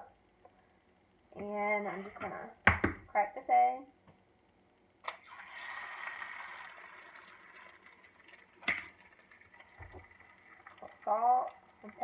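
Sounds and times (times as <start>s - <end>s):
egg cracking: 5.0s - 12.0s
egg sizzling on a griddle: 5.0s - 12.0s.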